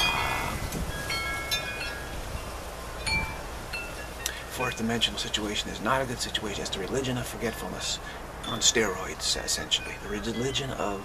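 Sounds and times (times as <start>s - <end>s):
wind chimes ringing: 0.0s - 11.0s.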